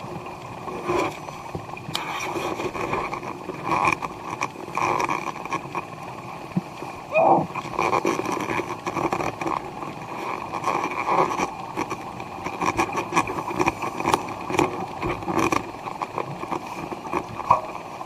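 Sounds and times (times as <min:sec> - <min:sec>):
underwater vacuum hum: 0:00.0 - 0:18.0
short clicks and crackles: 0:01.8 - 0:06.7, 0:07.6 - 0:17.8.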